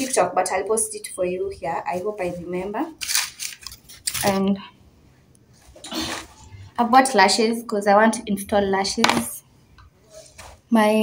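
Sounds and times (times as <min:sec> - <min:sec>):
packaging rustling: 0:03.0 - 0:04.4
person speaking: 0:04.0 - 0:04.8, 0:06.1 - 0:09.4.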